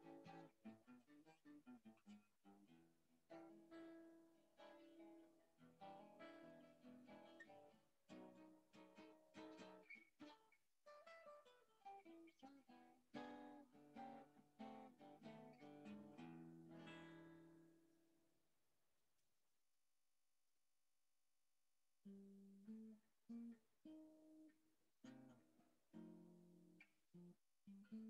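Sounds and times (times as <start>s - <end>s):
acoustic guitar playing: 0.0s - 17.8s, 22.0s - 28.0s.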